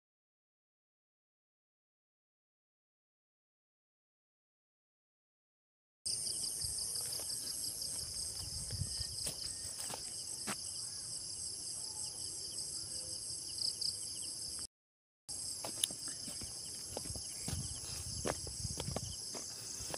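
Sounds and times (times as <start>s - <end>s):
insects trilling: 6.1s - 14.7s, 15.3s - 19.9s.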